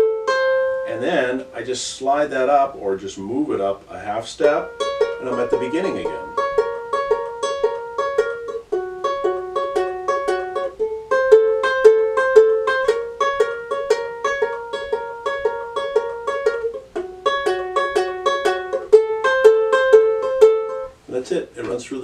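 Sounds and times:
ukulele fingerpicking: 0.0s - 1.8s, 4.2s - 21.0s.

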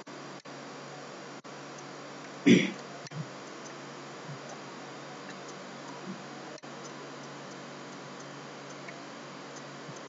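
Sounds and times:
faint low hum: 0.0s - 10.0s
room tone hiss: 0.0s - 10.0s
faint ticks: 5.2s - 10.0s.

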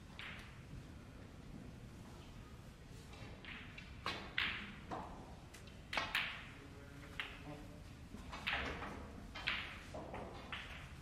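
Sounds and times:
snooker cue and balls clicking: 0.0s - 0.9s, 3.0s - 7.5s, 8.1s - 11.0s.

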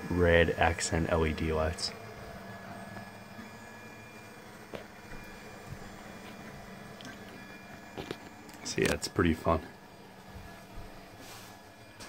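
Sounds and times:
printer fans and motors humming: 0.0s - 12.0s.

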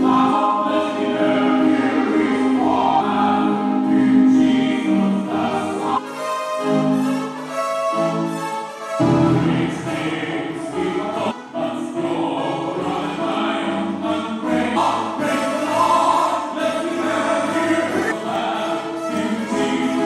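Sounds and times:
man singing into a microphone: 9.3s - 20.0s.

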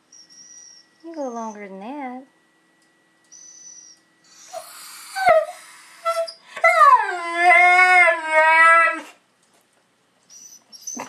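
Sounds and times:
dog howling and whining: 3.3s - 9.2s, 10.3s - 11.0s.

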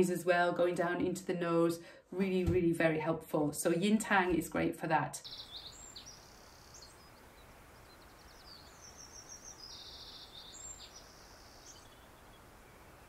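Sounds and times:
birds chirping and trilling: 5.2s - 13.0s
steady low hiss: 5.2s - 13.0s.

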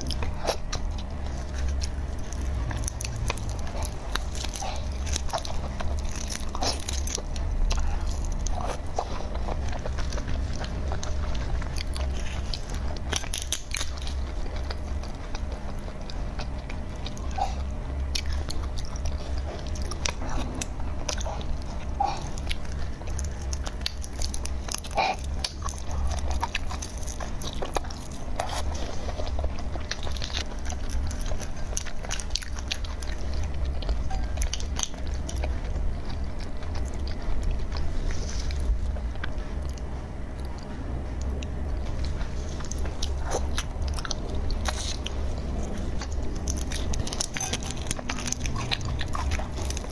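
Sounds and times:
eating shrimp with smacks: 0.0s - 49.9s
low steady hum: 0.0s - 49.9s.

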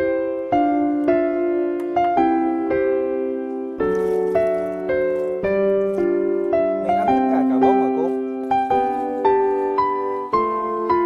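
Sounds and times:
gentle piano melody: 0.0s - 11.0s.

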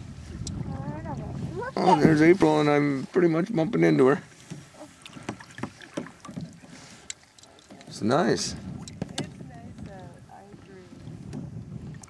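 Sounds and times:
paddle splashing in water: 0.1s - 12.0s
knocks against hull: 4.4s - 6.8s, 8.6s - 12.0s
water drips: 5.0s - 8.1s.

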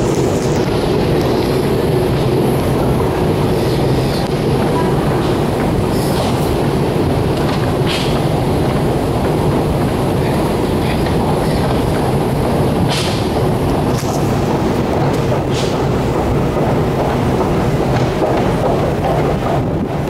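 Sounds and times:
escalator rumble and hum: 0.0s - 20.0s.

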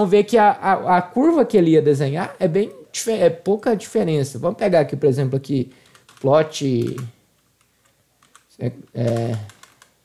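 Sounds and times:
computer keyboard typing: 5.8s - 7.1s, 7.8s - 10.0s.

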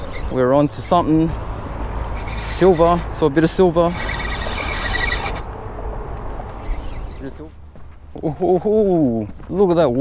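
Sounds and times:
high whirring: 2.0s - 5.6s.

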